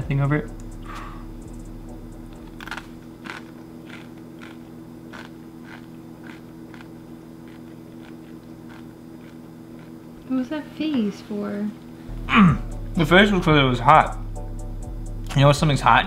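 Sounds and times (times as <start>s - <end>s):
steady low hum: 0.0s - 16.0s
person chewing crunchy chip: 2.5s - 10.0s.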